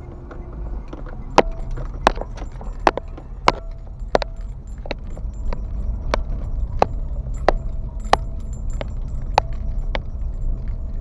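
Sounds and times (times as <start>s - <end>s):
car rattling clicks: 0.0s - 11.0s
car rumbling on dirt road: 0.0s - 11.0s.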